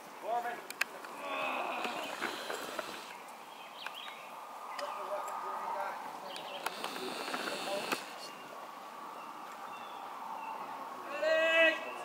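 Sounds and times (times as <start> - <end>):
distant voices calling out: 0.3 - 3.2, 4.4 - 9.4.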